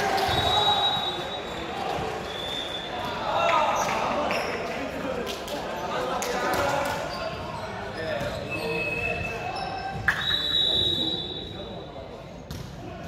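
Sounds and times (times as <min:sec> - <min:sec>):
players' indistinct voices: 0:00.0 - 0:13.0
sneakers squeaking on court: 0:07.1 - 0:10.2.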